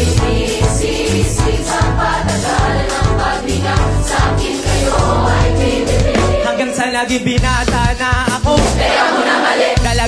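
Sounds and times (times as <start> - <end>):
large choir singing: 0.0 - 7.2, 8.8 - 9.8
instrumental backing with bass beat: 0.0 - 8.9, 9.8 - 10.0.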